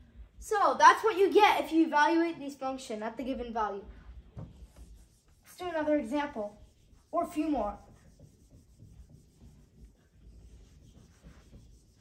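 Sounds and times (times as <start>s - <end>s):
eraser rubbing on whiteboard: 3.3s - 12.0s.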